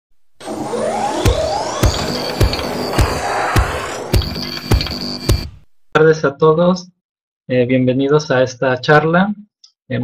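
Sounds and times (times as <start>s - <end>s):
electronic music: 0.2s - 5.7s
sweeping whooshes: 0.4s - 5.6s
kick drum beat: 1.2s - 5.8s.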